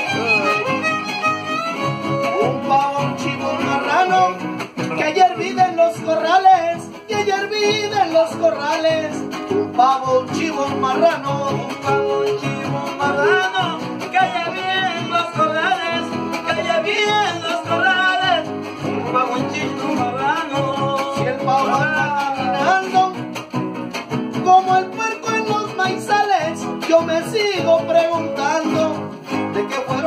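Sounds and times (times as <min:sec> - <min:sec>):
violin sliding melody: 0:00.0 - 0:02.7
strummed guitars: 0:00.0 - 0:30.0.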